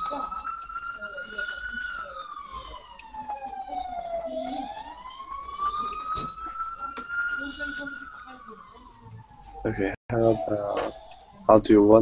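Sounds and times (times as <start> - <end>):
siren wailing: 0.0 - 12.0.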